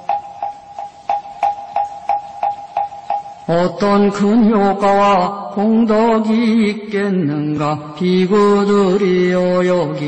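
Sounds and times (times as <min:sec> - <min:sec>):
person chanting: 0:03.5 - 0:10.0.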